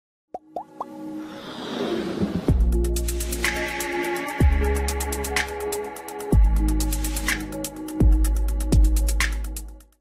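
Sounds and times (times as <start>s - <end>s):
whoosh: 1.2s - 2.9s.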